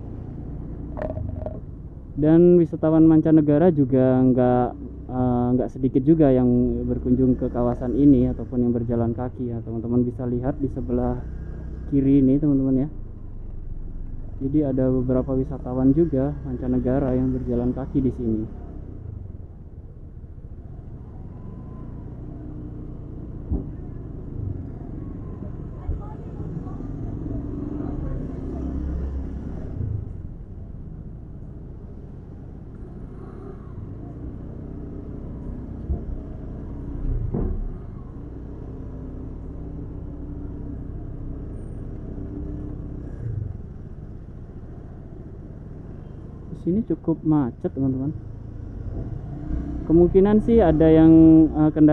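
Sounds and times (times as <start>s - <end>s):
street traffic engine hum: 0.0s - 51.9s.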